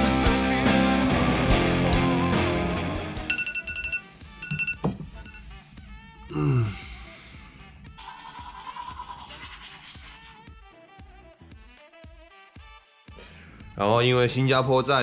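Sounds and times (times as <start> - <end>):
background music: 0.0 - 15.0
phone alarm beeping: 3.3 - 5.5.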